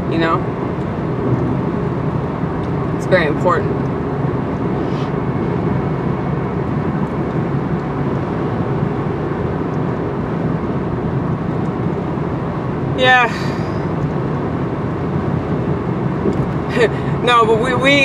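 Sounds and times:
car road and engine noise: 0:00.0 - 0:18.0.

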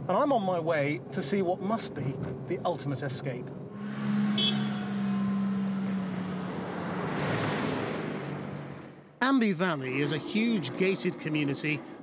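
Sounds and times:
tyre and road noise: 0:00.0 - 0:12.0
car engine hum: 0:02.0 - 0:09.2.

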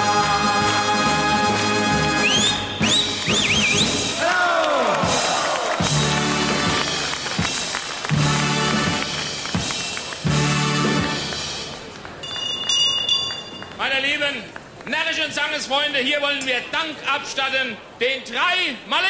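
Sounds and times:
crowd noise in hall: 0:00.0 - 0:19.0
band playing lively music: 0:05.0 - 0:12.0
hand bell ringing: 0:12.2 - 0:13.8.

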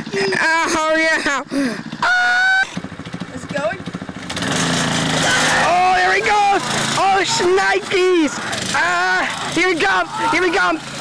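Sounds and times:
go-kart engine running: 0:00.0 - 0:11.0
person shouting: 0:02.0 - 0:02.8, 0:05.2 - 0:11.0.

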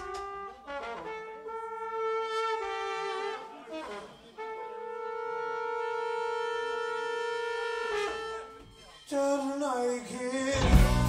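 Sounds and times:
horn playing long notes: 0:00.0 - 0:08.8.

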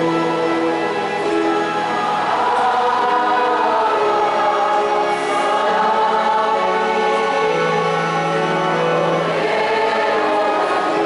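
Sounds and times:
choir singing slow sacred song: 0:00.0 - 0:11.0.

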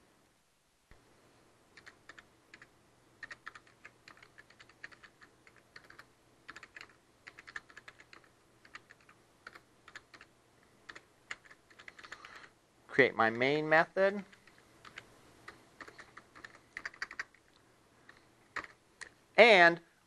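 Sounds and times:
computer keyboard typing: 0:01.8 - 0:10.3, 0:10.9 - 0:12.5, 0:14.3 - 0:17.4, 0:18.1 - 0:18.8.

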